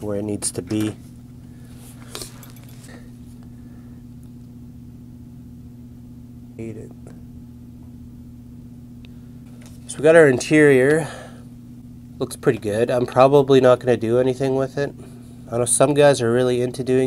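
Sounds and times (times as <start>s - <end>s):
low room hum: 0.0s - 17.0s
short hummed vocal sound: 6.5s - 8.1s, 9.0s - 12.4s, 14.9s - 15.6s.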